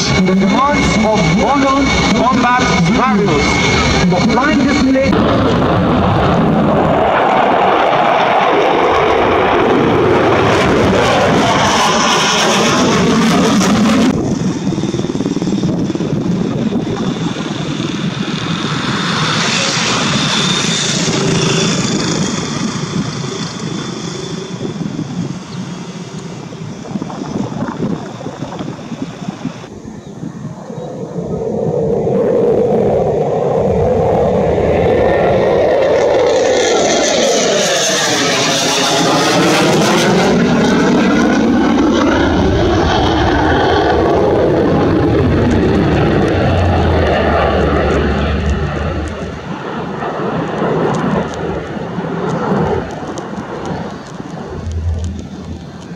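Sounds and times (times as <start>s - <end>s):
jet engine roaring: 0.0s - 55.9s.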